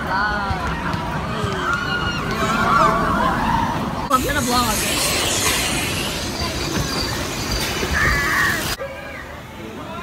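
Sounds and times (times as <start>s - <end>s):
ride car rushing and rattling: 4.1s - 8.8s.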